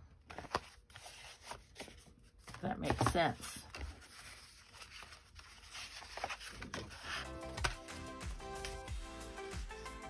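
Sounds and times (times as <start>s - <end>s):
card stock rustling and sliding: 0.3s - 8.0s
background music: 6.9s - 10.0s.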